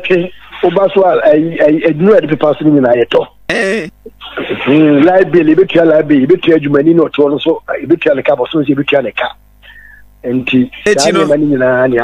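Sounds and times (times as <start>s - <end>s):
person talking: 3.5s - 6.8s, 8.6s - 12.0s.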